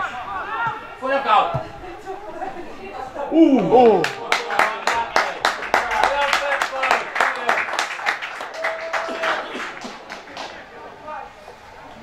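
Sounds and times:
hand clapping: 3.9s - 10.6s.

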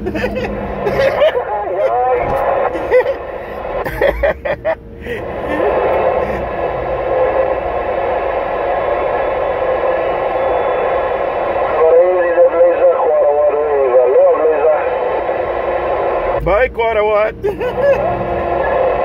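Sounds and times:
garbled radio voice: 0.0s - 8.1s, 11.5s - 15.6s
radio static hiss: 0.1s - 19.0s.

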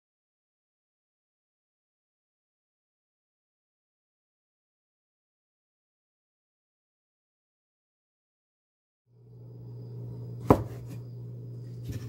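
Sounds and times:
steady low hum: 9.1s - 12.0s
knife chopping on cutting board: 10.4s - 11.0s.

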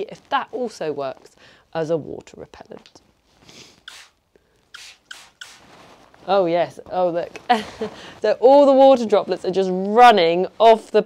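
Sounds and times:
spray bottle squirting water: 3.8s - 5.7s.

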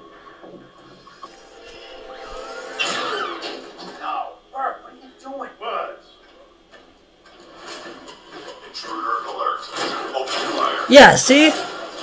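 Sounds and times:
sound effects: 1.2s - 4.0s
voices of tv characters: 8.6s - 11.8s.

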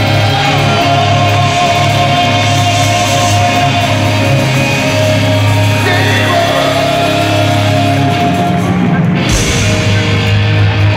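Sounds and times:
bass guitar: 0.0s - 10.9s
drums: 0.0s - 10.9s
electric guitar: 0.0s - 10.9s.

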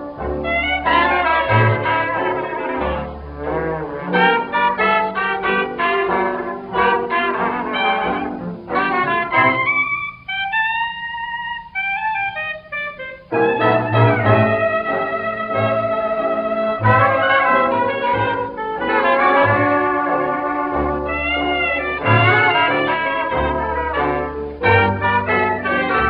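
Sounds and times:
hot jazz band playing: 0.0s - 26.0s
solo melody instrument line: 0.0s - 26.0s.

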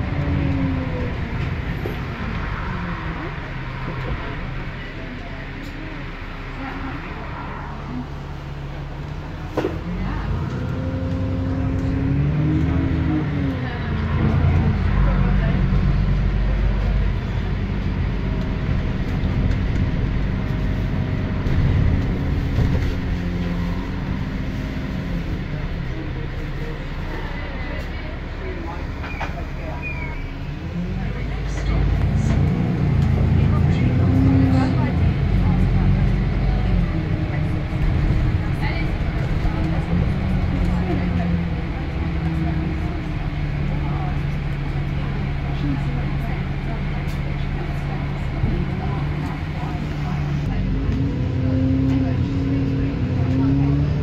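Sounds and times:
bus diesel engine: 0.0s - 54.0s.

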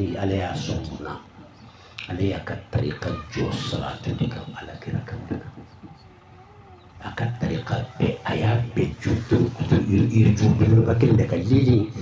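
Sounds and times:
man speaking: 0.0s - 5.8s, 7.0s - 12.0s
faint wavering hum: 0.0s - 12.0s.

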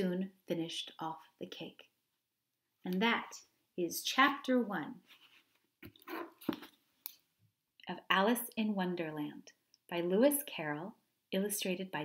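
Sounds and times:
person speaking: 2.8s - 6.7s.

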